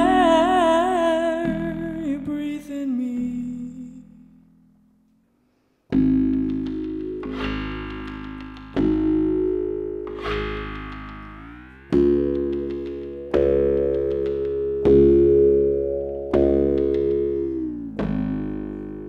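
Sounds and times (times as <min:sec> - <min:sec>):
low bass: 0:00.0 - 0:02.5, 0:05.9 - 0:19.0
electronic instrument chords: 0:05.9 - 0:19.0.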